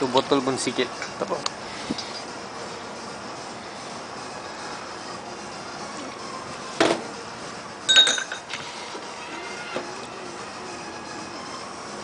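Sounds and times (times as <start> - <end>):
steady background noise: 0.0 - 12.0
glass clinking on glass: 7.9 - 8.5.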